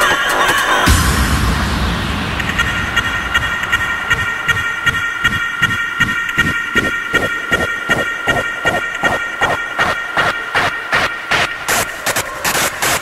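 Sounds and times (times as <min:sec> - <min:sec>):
noise sweep: 0:00.0 - 0:13.0
low bass pulse: 0:00.9 - 0:06.9.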